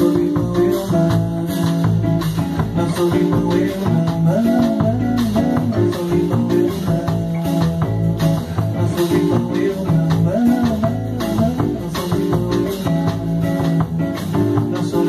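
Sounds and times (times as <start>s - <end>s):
drum kit: 0.0s - 15.0s
walking double bass: 0.0s - 15.0s.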